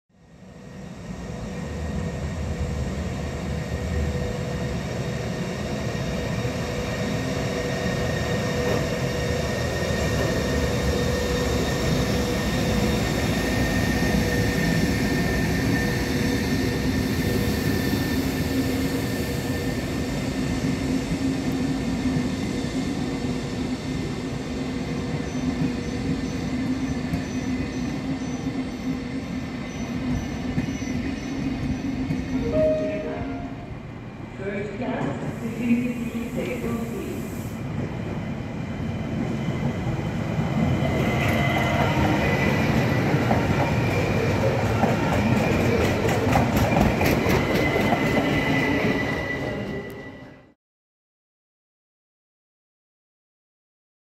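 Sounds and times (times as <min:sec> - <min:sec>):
train wheels rumbling on rail: 0:01.1 - 0:32.4, 0:34.2 - 0:50.4.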